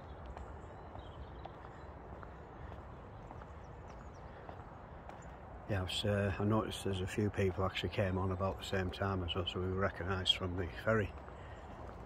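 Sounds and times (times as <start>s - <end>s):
footsteps on tarmac: 0.0s - 12.0s.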